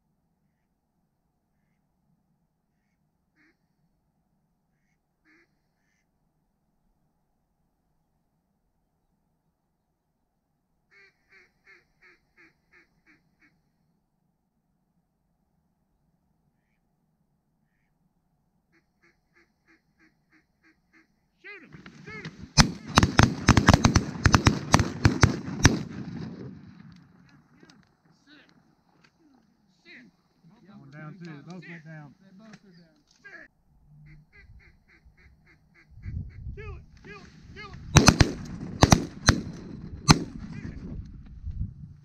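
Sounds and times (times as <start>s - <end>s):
shotgun shots: 21.8s - 27.0s, 37.8s - 40.9s
geese honking: 34.0s - 36.5s.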